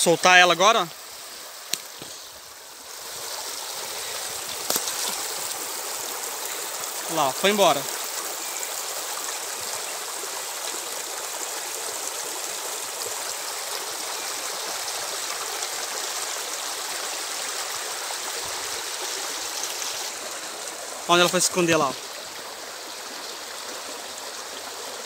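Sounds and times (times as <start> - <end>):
stream rushing over stones: 0.0 - 25.0.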